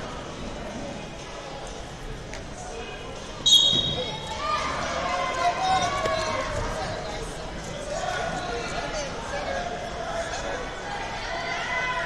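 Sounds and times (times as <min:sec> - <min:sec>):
voices in a hall: 0:00.0 - 0:12.0
referee's whistle blast: 0:03.4 - 0:04.1.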